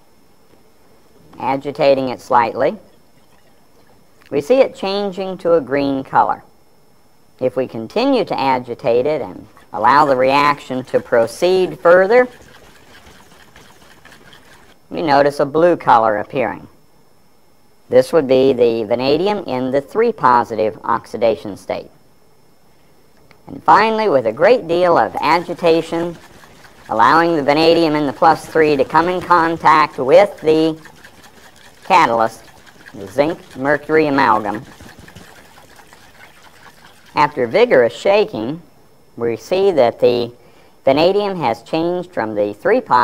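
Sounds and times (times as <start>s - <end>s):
low steady hiss: 0.0s - 13.0s
liquid swishing in glass flask: 2.9s - 4.1s, 9.4s - 14.8s, 23.8s - 37.7s.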